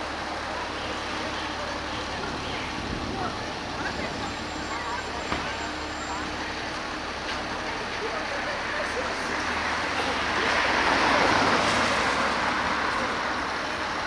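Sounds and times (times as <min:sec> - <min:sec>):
indistinct voices of passers-by: 0:00.0 - 0:14.0
road traffic: 0:00.0 - 0:14.0.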